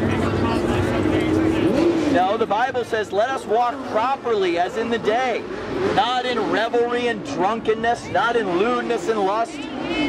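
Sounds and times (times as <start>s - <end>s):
noisy street crowd: 0.0s - 10.0s.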